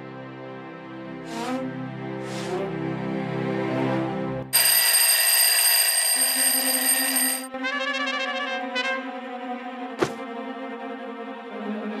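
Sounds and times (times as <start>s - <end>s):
alarm clock bell ringing: 4.6s - 7.5s.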